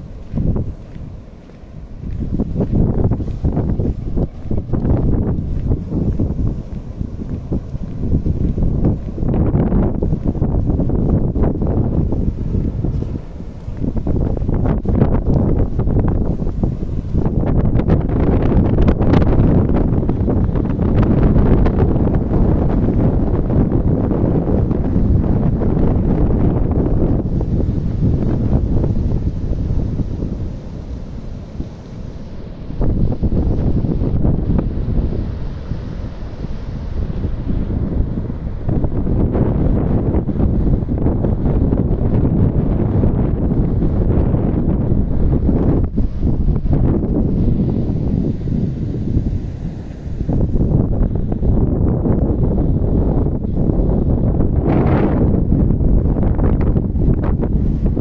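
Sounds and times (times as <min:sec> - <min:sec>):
surf breaking on beach: 0:00.0 - 0:58.0
wind buffeting microphone: 0:00.0 - 0:58.0.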